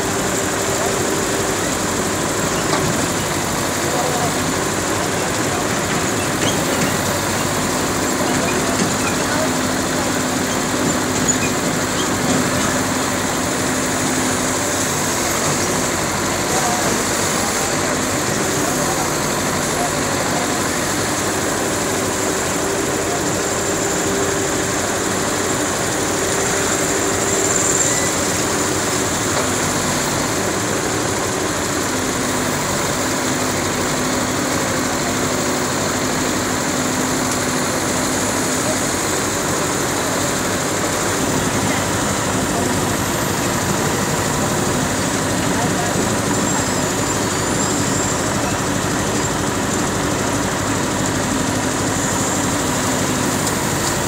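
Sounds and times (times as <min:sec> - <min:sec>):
diesel engine running: 0:00.0 - 0:54.0.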